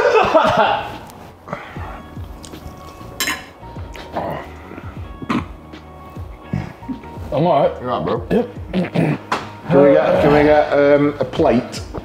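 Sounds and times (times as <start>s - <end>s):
quiet background music: 0.0s - 12.0s
cutlery clinking on a plate: 3.2s - 3.6s.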